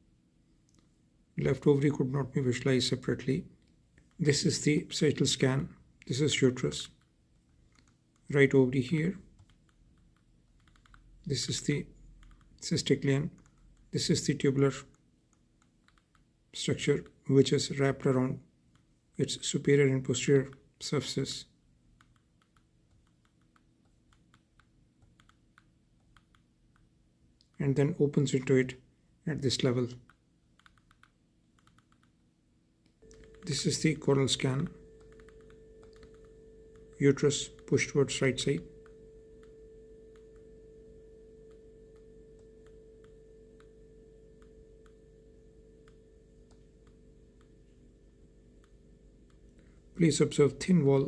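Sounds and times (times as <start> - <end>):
faint steady hum: 0.0 - 51.0
faint computer clicks: 9.3 - 11.2, 12.0 - 12.6, 14.8 - 16.3, 22.0 - 27.6, 30.0 - 32.2, 32.9 - 37.8.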